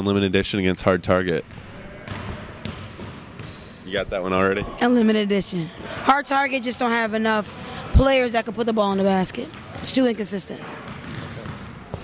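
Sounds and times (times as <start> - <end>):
basketballs bouncing on court: 1.4 - 5.4, 6.3 - 12.0.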